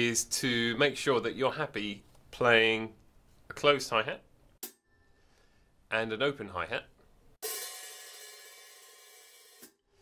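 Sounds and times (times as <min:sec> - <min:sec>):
open hi-hat ringing: 0:07.4 - 0:09.8.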